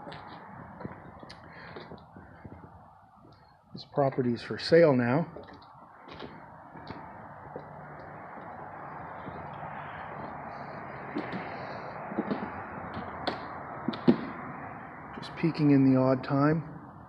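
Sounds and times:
footsteps on concrete floor: 0.0s - 3.6s, 5.3s - 14.2s
steady rushing background noise: 0.0s - 15.4s
sharp clicks and knocks: 12.1s - 14.4s.

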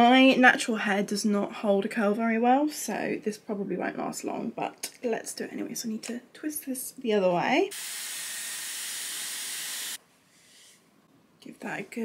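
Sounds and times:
hair styler blowing air: 7.7s - 10.0s.

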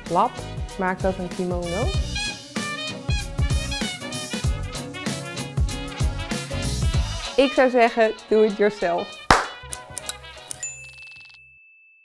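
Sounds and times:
high ringing ding: 10.6s - 12.0s.

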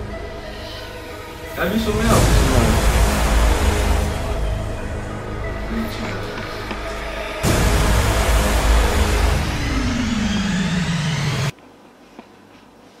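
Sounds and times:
background music: 0.0s - 11.5s
rushing sound effect falling tone: 1.6s - 11.5s.

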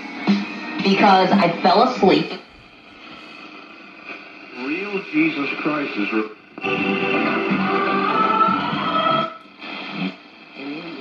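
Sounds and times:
tube radio playing music: 0.0s - 11.0s.

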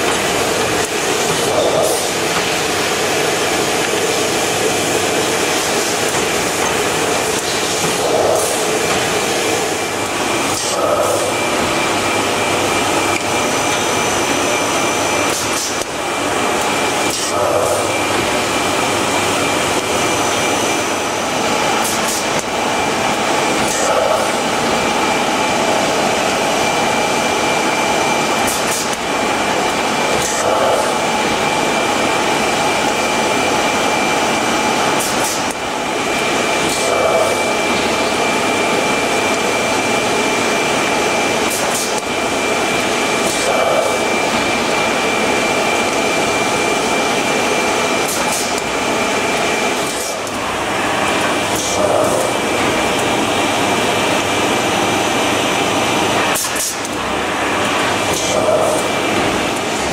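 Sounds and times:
machine running with high whine: 0.0s - 59.9s.

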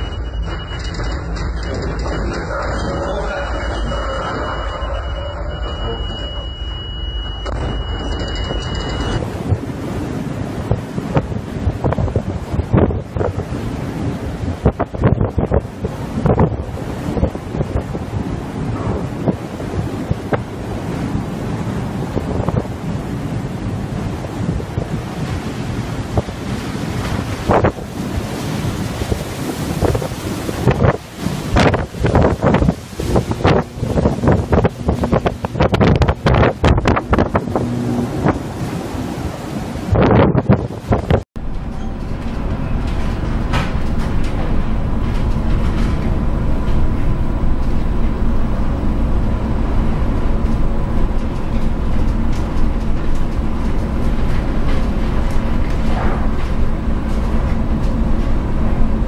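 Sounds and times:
heavy seas rushing: 0.0s - 59.0s
wind buffeting microphone: 6.6s - 59.0s.

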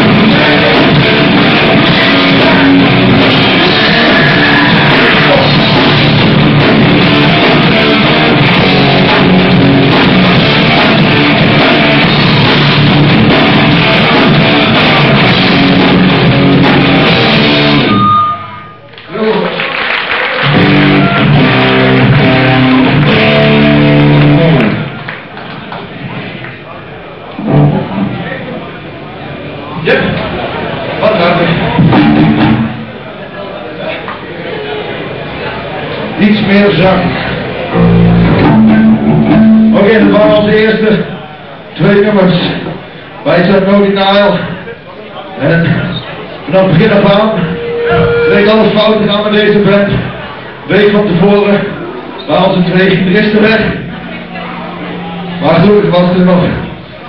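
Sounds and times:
punk band playing live: 0.0s - 18.7s, 20.4s - 26.3s, 27.4s - 28.2s, 31.5s - 33.0s, 37.2s - 40.7s, 46.6s - 51.2s, 52.8s - 57.0s
electric guitar notes: 0.0s - 18.9s, 20.4s - 24.9s, 37.7s - 40.5s, 46.7s - 50.3s, 52.8s - 57.0s
quiet stage and hall sound: 0.0s - 57.0s
man speaking: 46.5s - 50.0s, 55.3s - 56.7s.

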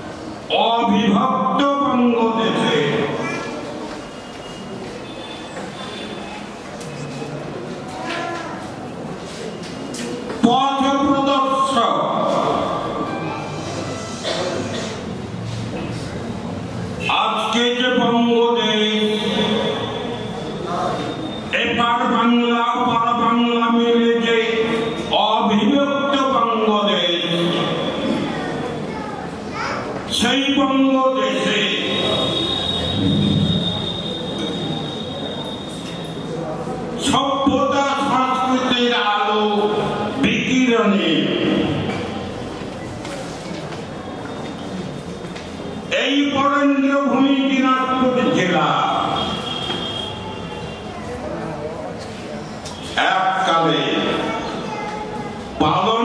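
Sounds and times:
man speaking over pa system: 0.5s - 3.7s, 10.4s - 13.2s, 17.0s - 28.3s, 30.1s - 33.6s, 37.0s - 42.0s, 45.9s - 49.5s, 52.9s - 54.4s, 55.6s - 56.0s
loud drawn-out vowel: 31.5s - 35.8s
microphone feedback squeal: 31.8s - 36.3s, 49.0s - 50.8s.

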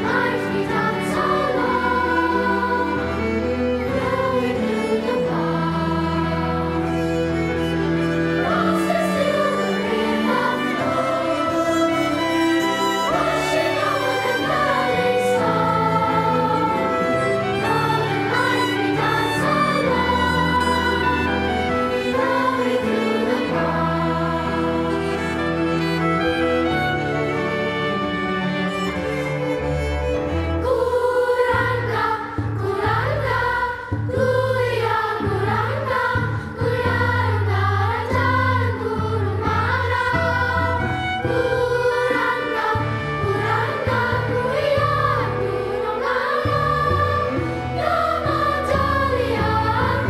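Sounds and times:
children's choir singing: 0.0s - 50.0s
piano: 0.0s - 50.0s
violins and bowed strings: 0.0s - 50.0s.

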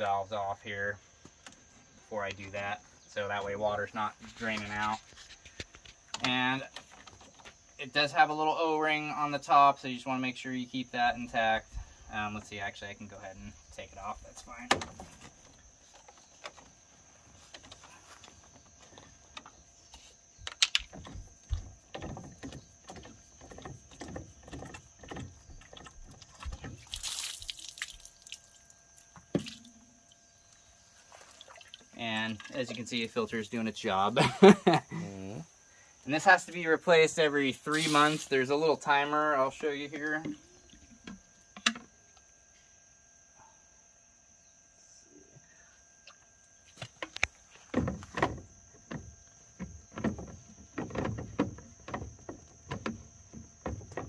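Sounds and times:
water splashing on ground: 26.8s - 28.6s, 37.7s - 38.4s
plastic knocks and scrapes: 46.9s - 54.0s.

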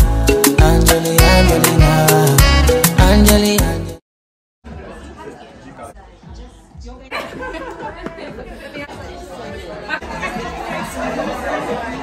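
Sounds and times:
chatter of many people: 4.6s - 12.0s.

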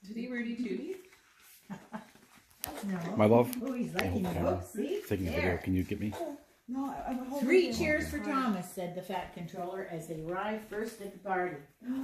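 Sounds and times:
soft vocal sounds: 7.6s - 8.3s.

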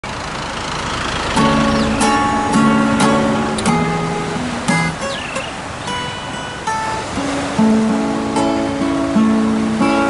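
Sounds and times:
road traffic rushing: 0.0s - 8.4s
acoustic guitar chord strummed: 1.2s - 10.0s.

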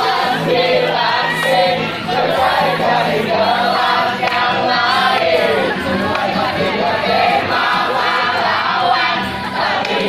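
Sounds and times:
acoustic guitar: 0.0s - 10.0s
teenagers singing together: 0.0s - 10.0s.

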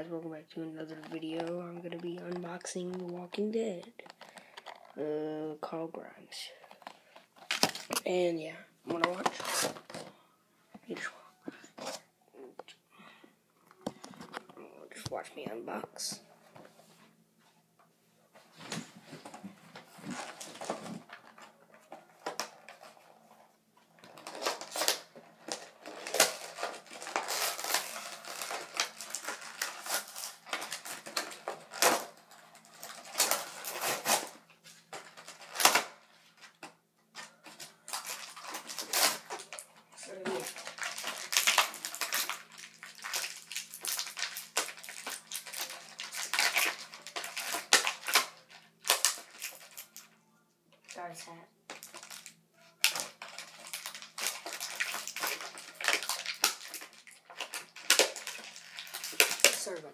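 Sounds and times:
packaging crinkling and tearing: 6.6s - 8.3s, 8.9s - 10.1s, 18.6s - 50.1s, 50.8s - 59.9s.

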